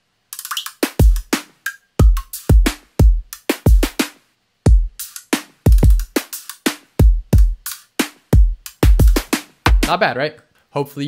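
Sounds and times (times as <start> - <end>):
metallic hi-hats: 0.1 - 10.0
snare drum: 0.5 - 10.0
bass-heavy kick drum: 2.0 - 4.0, 4.7 - 5.0, 5.7 - 6.2, 7.0 - 7.7, 8.3 - 10.0.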